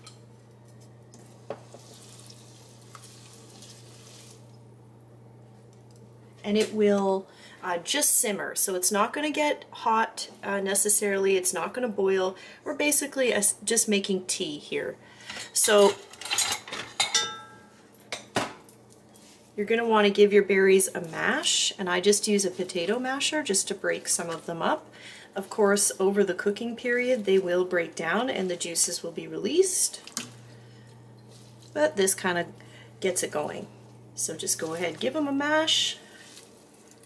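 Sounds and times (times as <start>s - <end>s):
metal utensils clinking: 15.3s - 17.6s
spoon stirring berries in water: 29.8s - 32.4s, 34.2s - 37.0s.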